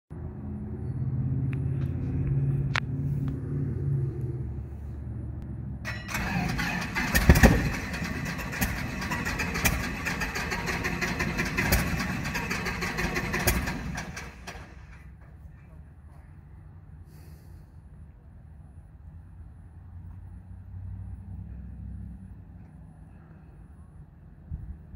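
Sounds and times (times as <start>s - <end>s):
aircraft engine starting: 5.9s - 15.3s.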